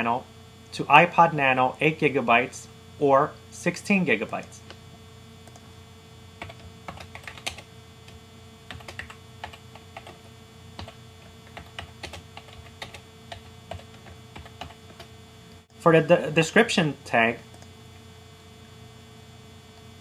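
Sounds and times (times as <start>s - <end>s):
faint steady hum: 0.0s - 20.0s
keyboard typing: 6.4s - 15.1s.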